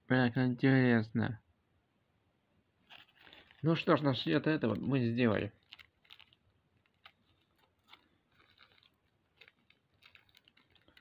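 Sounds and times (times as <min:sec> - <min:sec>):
plastic packet crinkling: 0:02.8 - 0:11.0.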